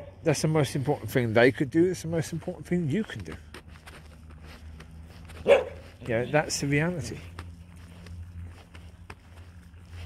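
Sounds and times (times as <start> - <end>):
dog barking: 5.4 - 5.8.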